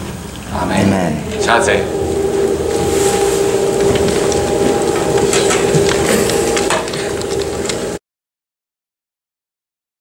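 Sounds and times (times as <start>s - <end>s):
steady held tone: 0.5s - 8.0s.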